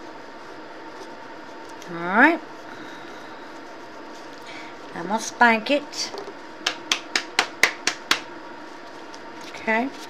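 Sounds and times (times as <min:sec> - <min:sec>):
sharp slaps on silicone mold: 0:06.6 - 0:08.3.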